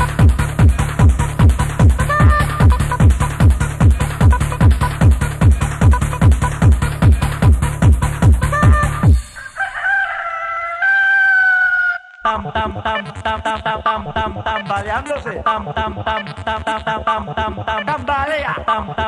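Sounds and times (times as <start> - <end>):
electronic dance beat: 0.0 - 9.4, 12.3 - 19.0
rooster crowing sound effect: 2.0 - 2.8, 8.5 - 12.2.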